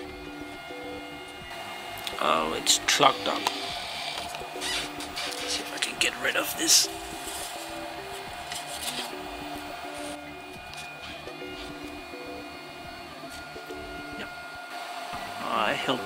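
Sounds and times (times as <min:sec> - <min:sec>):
fan hum: 0:00.0 - 0:16.0
stepper motors whining: 0:00.0 - 0:16.0.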